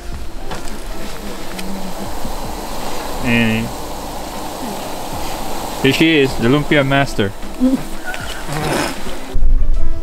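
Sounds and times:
food sizzling in hot oil: 0.0s - 9.4s.

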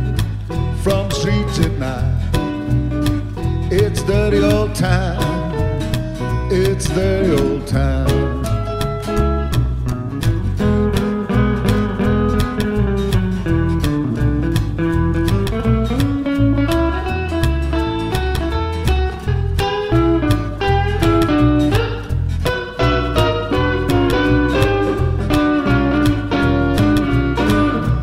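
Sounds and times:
bass and drums beat: 0.0s - 28.0s
electric guitar lead lines: 0.0s - 28.0s.

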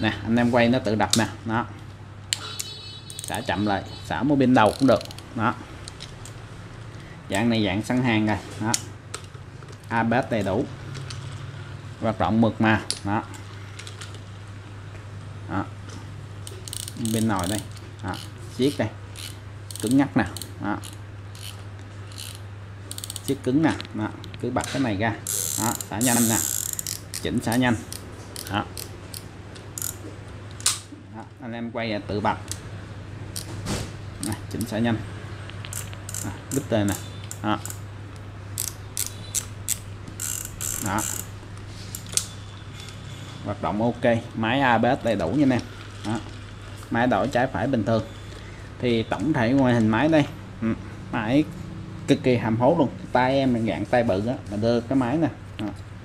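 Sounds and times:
fishing reel clicking: 3.1s - 3.4s, 4.6s - 5.3s, 16.5s - 23.4s, 25.2s - 30.0s, 35.7s - 37.8s, 38.6s - 41.3s
fishing reel whirring: 16.5s - 23.3s, 25.2s - 27.2s, 27.9s - 30.0s, 35.7s - 37.8s, 38.6s - 41.3s.

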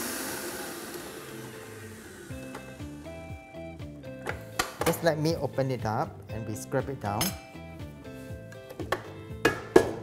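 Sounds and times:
stand mixer motor: 0.0s - 3.4s
background music: 0.0s - 10.0s.

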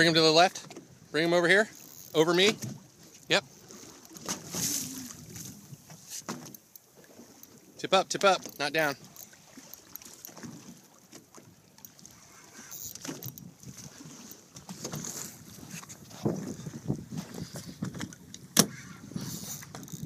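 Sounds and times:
water lapping against boat hull: 0.0s - 20.0s.

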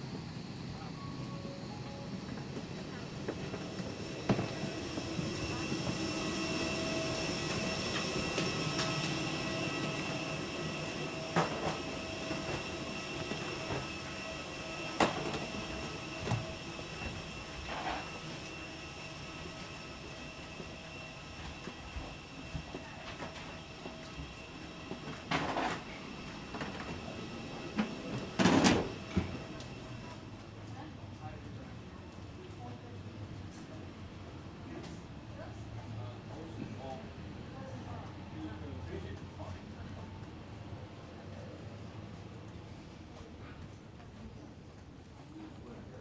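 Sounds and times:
airliner machinery whine and hum: 0.0s - 46.0s.

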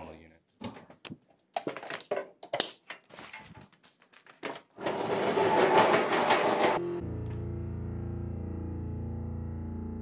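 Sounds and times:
cart rattling across concrete: 4.8s - 6.8s.

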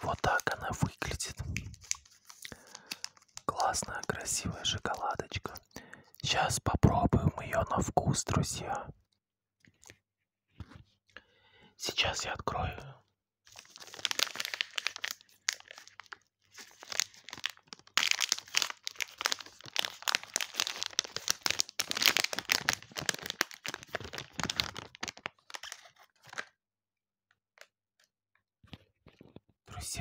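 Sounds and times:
wrapper crinkling: 0.0s - 5.7s, 13.5s - 26.5s.

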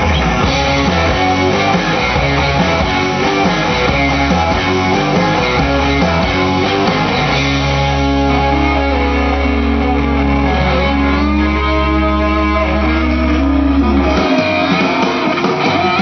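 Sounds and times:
rock music with electric guitar: 0.0s - 16.0s.

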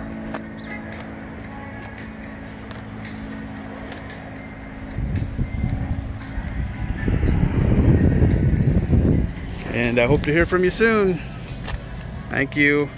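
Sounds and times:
steady low hum: 0.0s - 12.9s
wind buffeting microphone: 4.6s - 12.7s.

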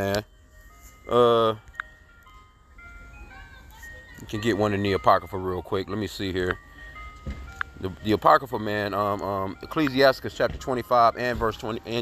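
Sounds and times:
ice cream truck jingle: 0.0s - 12.0s.

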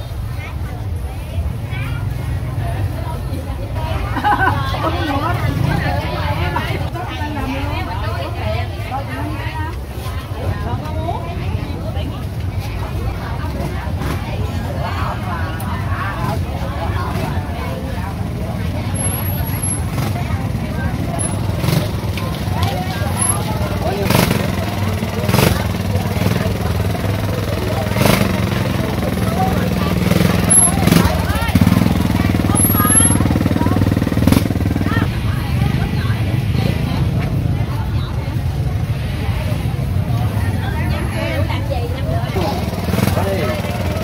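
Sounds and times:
people talking over one another: 0.0s - 44.0s
motorbike engine running: 7.7s - 44.0s.

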